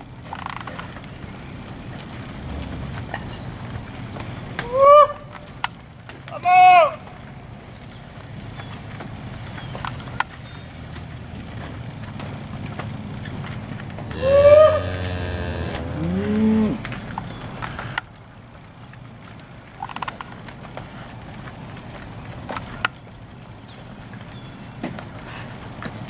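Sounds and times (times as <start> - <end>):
steers mooing: 2.1 - 5.4, 11.4 - 18.0.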